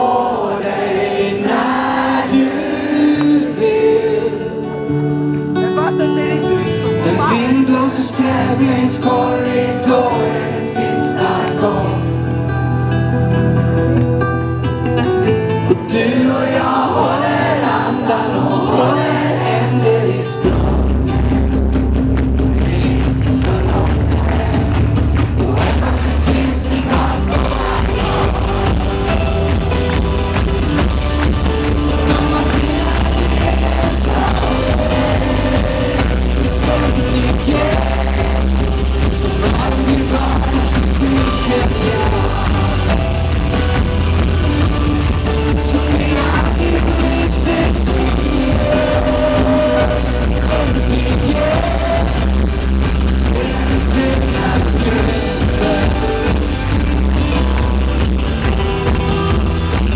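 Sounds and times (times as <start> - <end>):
man singing: 0.0 - 12.5, 15.0 - 21.6, 22.4 - 30.2, 30.8 - 43.6, 45.3 - 56.8
rock band playing live: 0.0 - 59.9.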